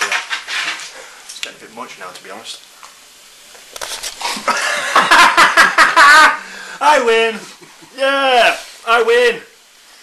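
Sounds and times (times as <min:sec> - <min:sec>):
knocks and handling noise: 0:00.0 - 0:00.9
men laughing and exclaiming: 0:04.3 - 0:08.6.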